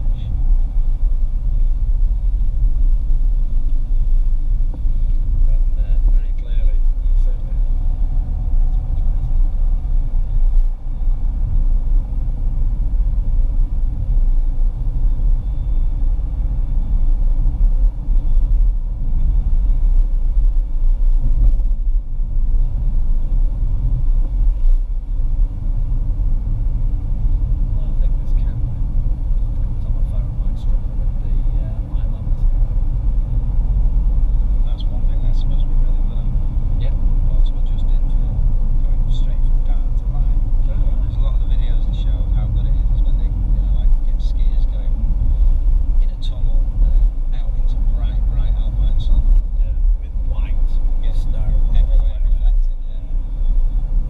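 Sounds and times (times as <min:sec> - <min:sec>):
tyre and road noise: 0:00.0 - 0:54.0
wind: 0:00.0 - 0:54.0.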